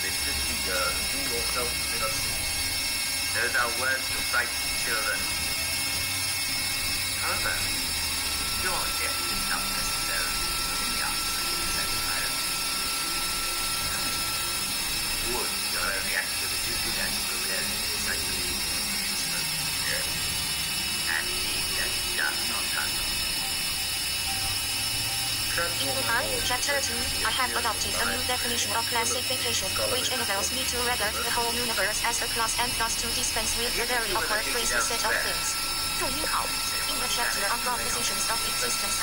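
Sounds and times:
synthesizer drone: 0:00.0 - 0:39.0.

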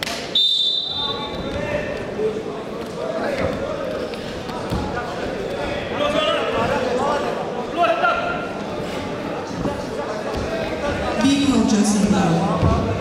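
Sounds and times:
murmur of voices in a hall: 0:00.0 - 0:13.0
referee's whistle: 0:00.3 - 0:01.4.

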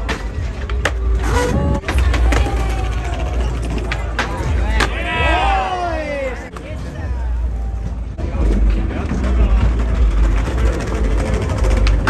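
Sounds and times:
skateboard clacks: 0:00.0 - 0:05.3, 0:08.4 - 0:12.0
crowd voices: 0:00.0 - 0:12.0
skateboard wheels rolling on paving: 0:00.0 - 0:12.0.

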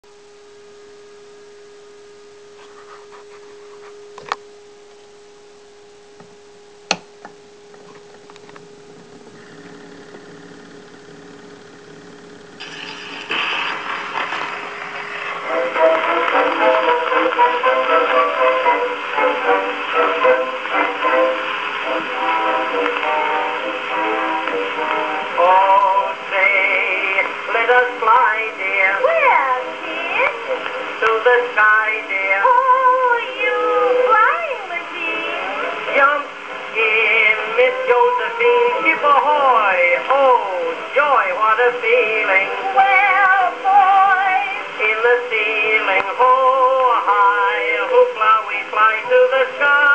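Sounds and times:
record groove hiss: 0:00.0 - 0:49.9
instrumental music on phonograph: 0:00.4 - 0:49.9.

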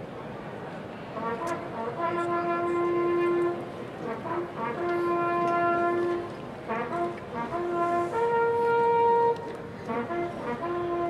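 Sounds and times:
brass bugle call: 0:01.2 - 0:11.0.

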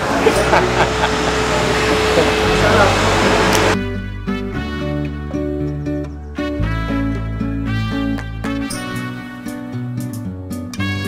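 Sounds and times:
busy room noise: 0:00.0 - 0:03.8
people laughing: 0:00.0 - 0:03.8
background music with steady beat: 0:00.3 - 0:11.0.

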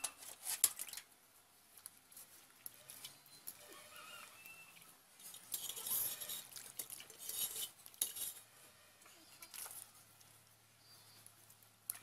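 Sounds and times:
fish scraping against metal: 0:00.0 - 0:01.0, 0:05.2 - 0:09.7
water sloshing in metal basin: 0:00.0 - 0:01.2, 0:04.7 - 0:08.4.

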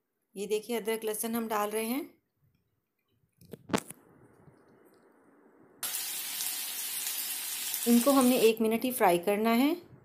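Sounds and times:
garlic sizzling in hot oil: 0:05.8 - 0:08.6.

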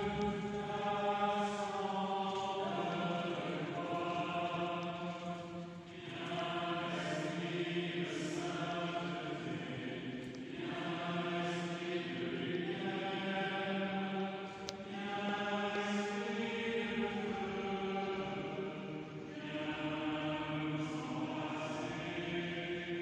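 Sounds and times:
voices singing a slow chant: 0:00.0 - 0:23.0.

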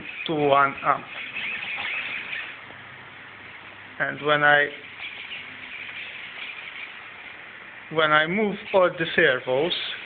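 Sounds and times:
servos whirring: 0:00.0 - 0:02.7, 0:04.7 - 0:07.4.

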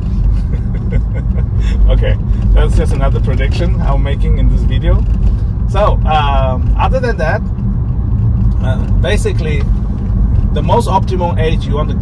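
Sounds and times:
road and tyre rumble in car: 0:00.0 - 0:12.0
person laughing: 0:00.2 - 0:01.9.

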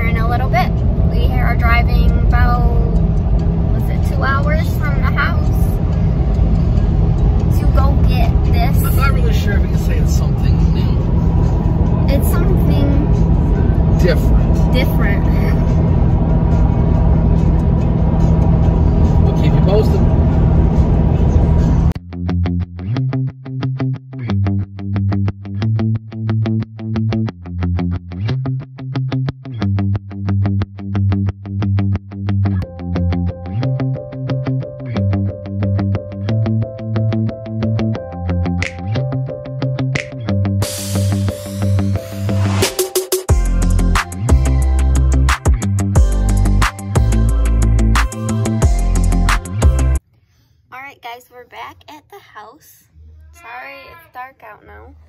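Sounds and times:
road and engine rumble in cab: 0:00.0 - 0:22.0
distorted electric guitar music: 0:00.0 - 0:50.0.

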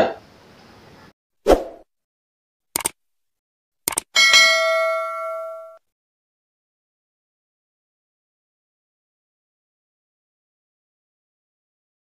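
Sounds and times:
double mouse click: 0:02.8 - 0:03.0, 0:03.9 - 0:04.1
notification bell ding: 0:04.2 - 0:05.8.

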